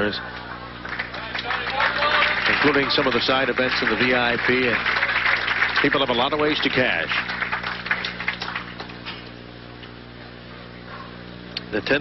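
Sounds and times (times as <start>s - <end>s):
steady low hum: 0.0s - 12.0s
crowd handclaps: 0.4s - 9.3s.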